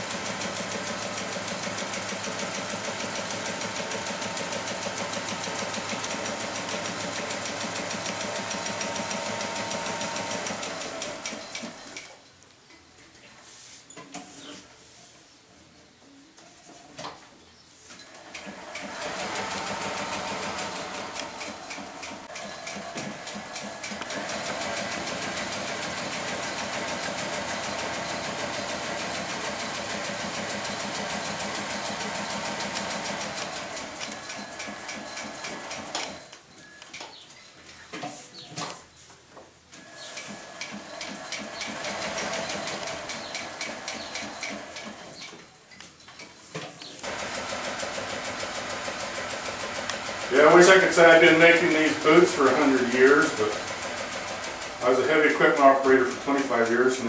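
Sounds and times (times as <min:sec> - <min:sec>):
sewing machine stitching: 0:00.0 - 0:12.1, 0:18.0 - 0:36.4, 0:39.8 - 0:45.3, 0:47.0 - 0:57.0.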